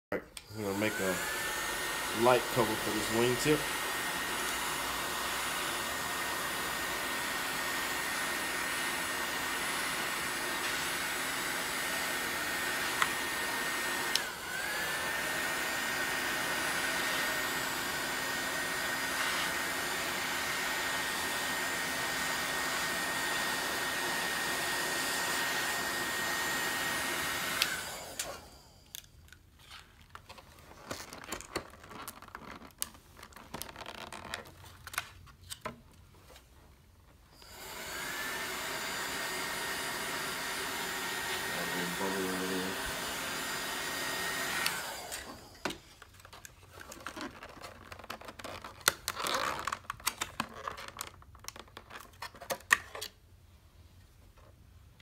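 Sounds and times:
heat gun fan whining: 0.4 - 29.5, 37.3 - 46.6.

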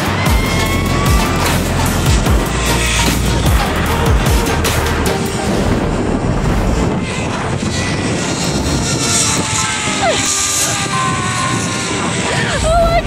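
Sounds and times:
background music: 0.0 - 13.0
pulleys running along cable: 0.0 - 13.0
wind rushing: 0.0 - 13.0.

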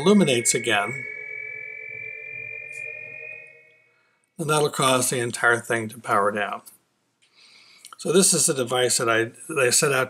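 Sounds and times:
endlessly rising sine tones: 0.0 - 5.5.

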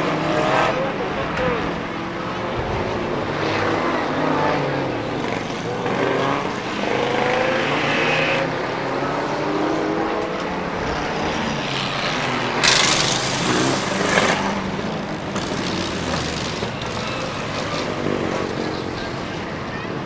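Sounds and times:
race car engines revving: 0.0 - 20.0
loud burst of noise: 12.6 - 14.5.

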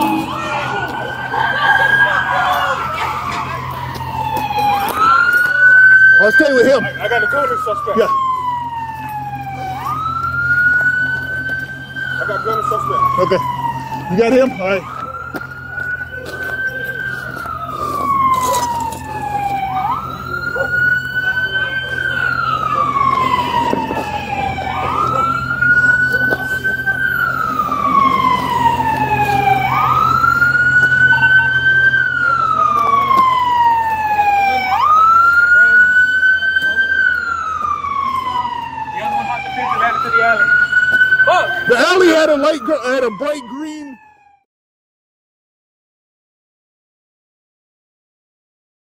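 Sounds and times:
emergency siren wailing: 0.0 - 44.5.

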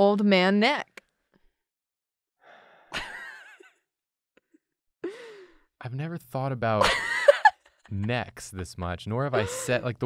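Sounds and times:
person inhaling breathily: 2.4 - 3.0, 5.1 - 5.6
person laughing: 3.0 - 3.6, 6.6 - 10.0.

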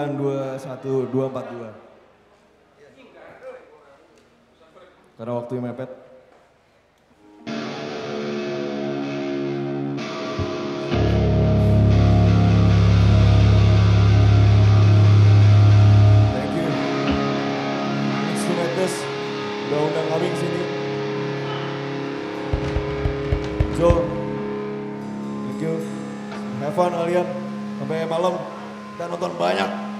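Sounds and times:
electric guitar chords: 7.2 - 29.9
low bass note: 10.4 - 18.3.

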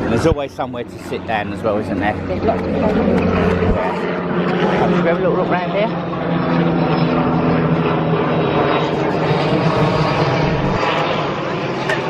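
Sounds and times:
low engine drone: 0.0 - 12.0.

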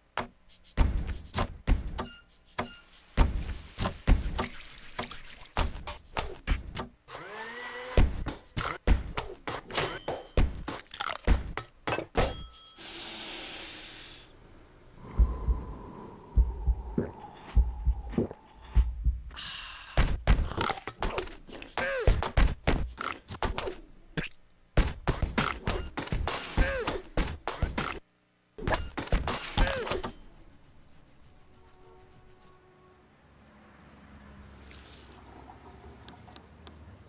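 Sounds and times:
heartbeat thumps: 15.0 - 19.4.

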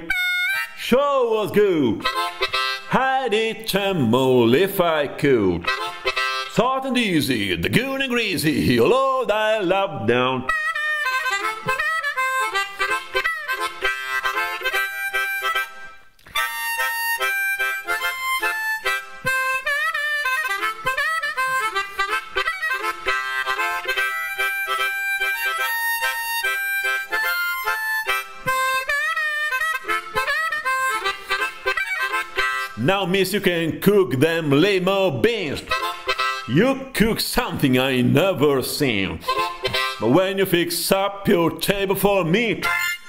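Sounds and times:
blues harmonica solo: 0.0 - 43.0
person singing: 2.9 - 5.7, 8.4 - 10.5.

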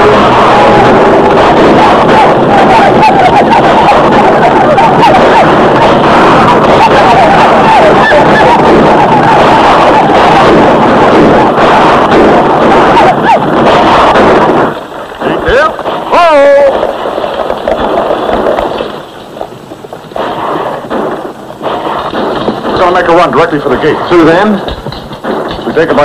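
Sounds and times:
riders yelling: 0.0 - 18.2
gunshots: 0.0 - 26.0
horses galloping: 0.0 - 26.0
wagons rolling: 14.7 - 26.0.

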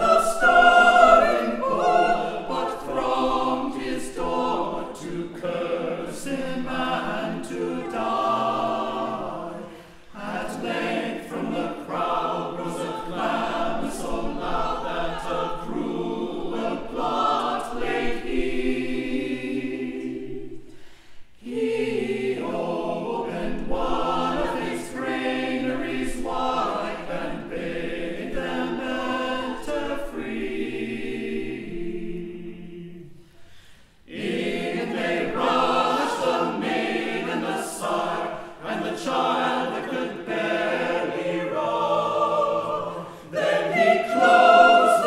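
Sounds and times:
mixed choir singing a cappella: 0.0 - 45.0.

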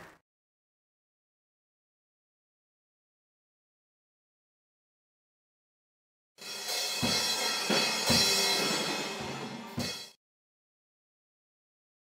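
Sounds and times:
crash cymbals: 6.4 - 10.2.

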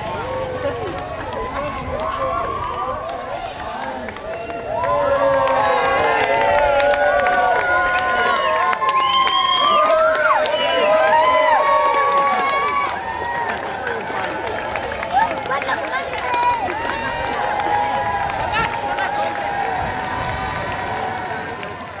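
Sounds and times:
crowd cheering and shouting: 0.0 - 22.0.

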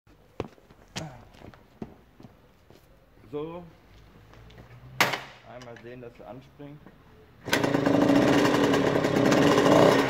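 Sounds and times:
footsteps on asphalt: 0.1 - 3.0, 3.8 - 4.9.

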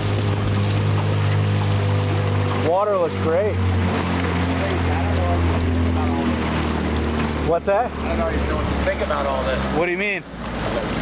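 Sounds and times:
outboard motor running: 0.0 - 11.0
water rushing past hull: 0.0 - 11.0
wind: 0.0 - 11.0.

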